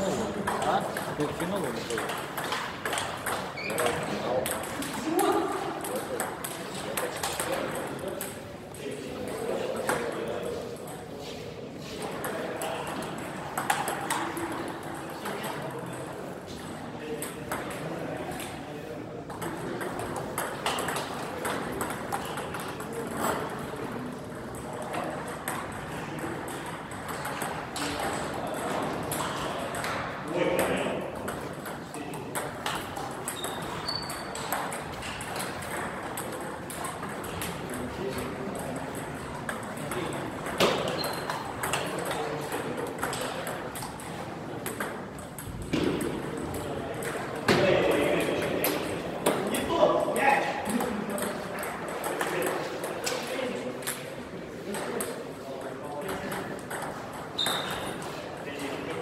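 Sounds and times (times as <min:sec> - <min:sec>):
table tennis ball ticking: 0:31.2 - 0:47.2.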